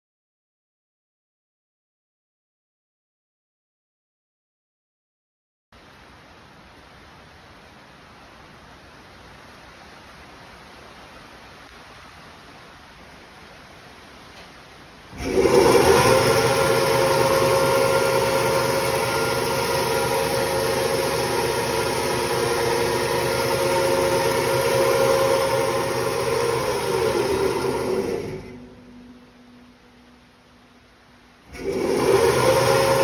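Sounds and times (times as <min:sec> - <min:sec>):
bandsaw running down: 0:15.2 - 0:28.6, 0:31.5 - 0:33.0
bandsaw running: 0:15.2 - 0:28.7, 0:31.5 - 0:33.0.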